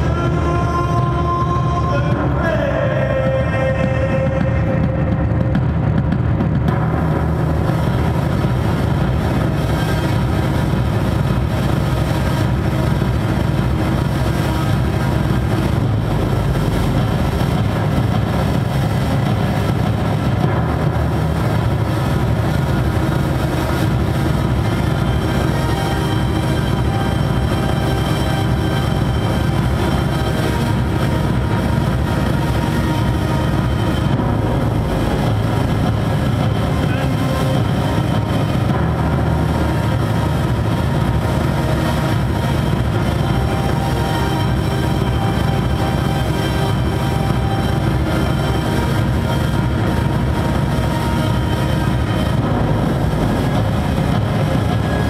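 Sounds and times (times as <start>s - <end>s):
industrial electronic music: 0.0s - 55.0s.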